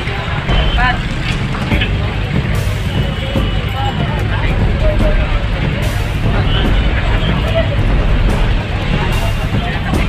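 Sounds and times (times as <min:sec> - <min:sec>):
low rumble of street noise: 0:00.0 - 0:10.0
street crowd chatter: 0:00.0 - 0:10.0.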